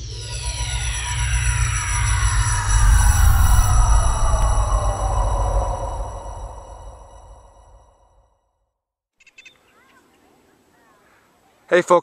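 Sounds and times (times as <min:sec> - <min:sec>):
deep bass rumble: 0:00.0 - 0:08.2
tones gliding downward: 0:00.0 - 0:08.2.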